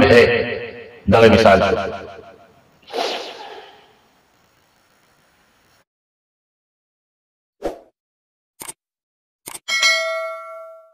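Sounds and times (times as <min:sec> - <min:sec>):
whoosh sound effect: 0:02.8 - 0:03.9.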